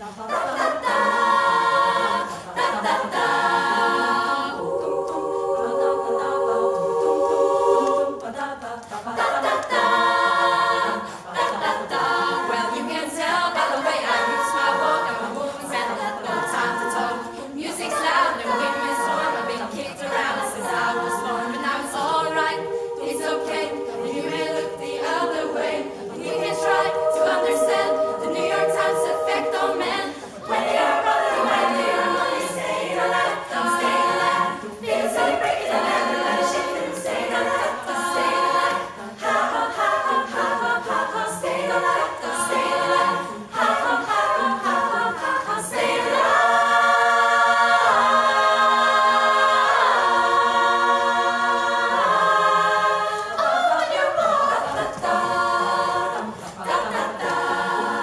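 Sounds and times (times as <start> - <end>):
women's choir singing a cappella: 0.0 - 58.0.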